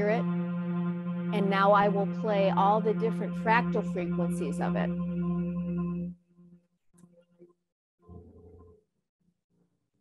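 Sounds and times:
steady pure low keyboard tone: 0.0s - 6.2s.

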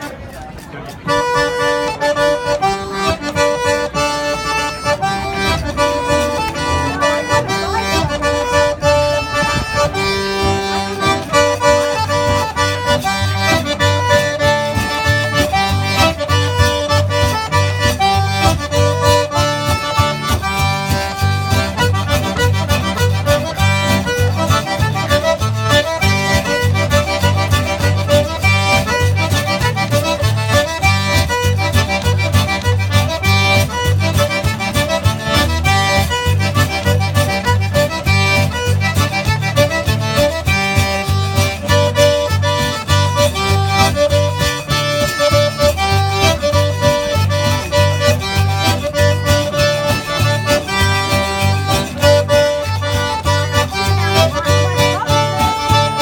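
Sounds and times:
accordion rapid runs: 0.0s - 56.0s
acoustic guitar: 0.0s - 56.0s
steady low beat: 1.0s - 56.0s.

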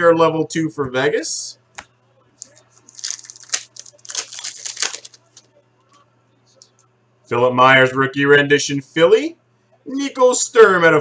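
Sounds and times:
foil pack crinkling and tearing: 2.4s - 5.4s.

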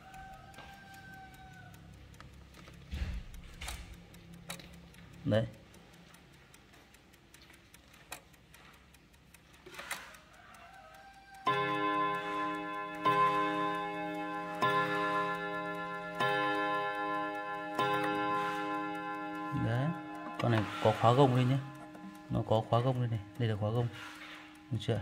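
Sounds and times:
clock ticking: 0.0s - 25.0s
clock chime on rod gongs: 11.5s - 25.0s.

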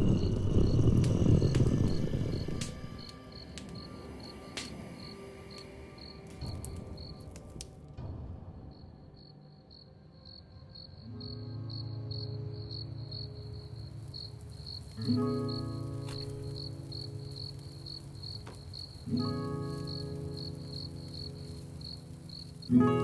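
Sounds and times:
crickets chirping: 0.0s - 7.6s, 8.5s - 23.0s.

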